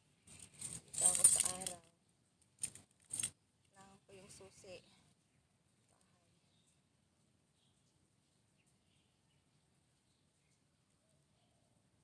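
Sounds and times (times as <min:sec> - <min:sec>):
keys jangling: 0:00.3 - 0:01.8.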